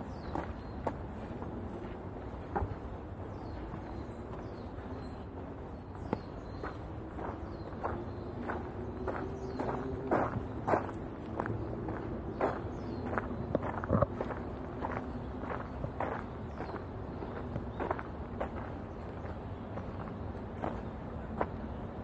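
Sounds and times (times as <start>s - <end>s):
footsteps crunching on gravel: 0.0s - 21.7s.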